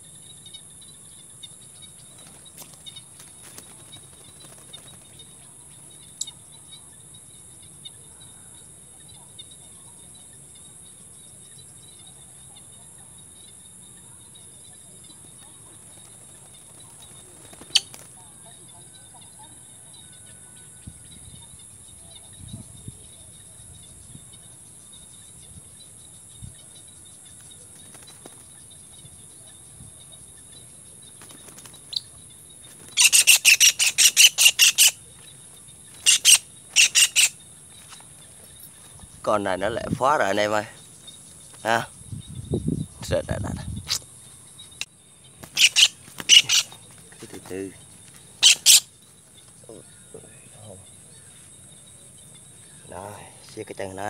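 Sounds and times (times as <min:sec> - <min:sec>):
insect trilling: 0:00.0 - 0:54.0
bird giving harsh calls: 0:32.8 - 0:35.1, 0:35.9 - 0:38.0, 0:45.4 - 0:47.7, 0:48.4 - 0:48.9.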